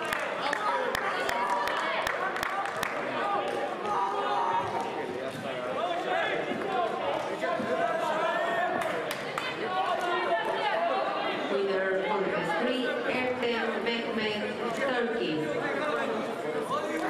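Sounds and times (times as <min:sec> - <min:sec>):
voices calling out in a hall: 0:00.0 - 0:17.0.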